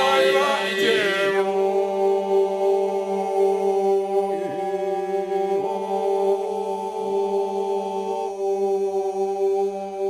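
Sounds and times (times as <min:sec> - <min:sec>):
male group singing with drone: 0:00.0 - 0:10.0.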